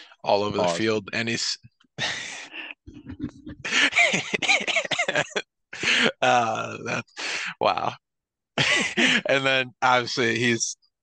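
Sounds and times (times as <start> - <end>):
person laughing: 0.5 - 0.8, 2.0 - 7.1, 8.6 - 9.3
sharp breath: 7.2 - 7.6.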